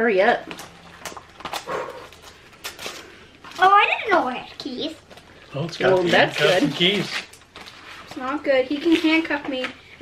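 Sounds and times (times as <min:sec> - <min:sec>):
plastic packaging crinkling: 0:00.5 - 0:04.1, 0:05.0 - 0:09.3.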